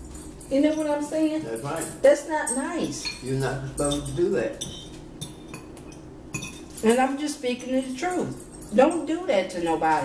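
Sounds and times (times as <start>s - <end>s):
cutlery tapping ceramic bowls: 1.5s - 10.0s.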